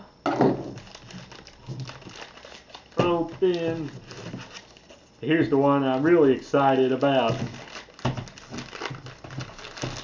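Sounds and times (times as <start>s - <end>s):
plastic bag crinkling: 0.6s - 10.0s.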